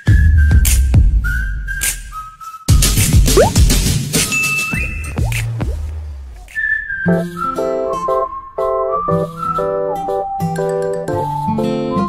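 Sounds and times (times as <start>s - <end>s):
whistled tune background music: 0.0s - 3.6s, 6.3s - 12.0s.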